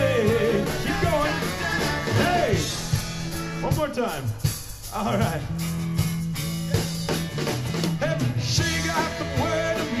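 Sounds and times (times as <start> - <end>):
person singing lead vocal: 0.0 - 3.0, 8.0 - 10.0
electric guitars: 0.0 - 3.8, 4.4 - 10.0
drum kit beat: 0.0 - 10.0.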